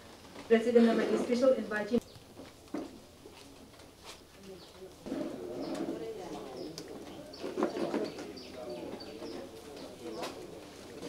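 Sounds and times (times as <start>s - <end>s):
faint background voices: 2.8s - 11.0s
pigeon cooing: 5.0s - 11.0s.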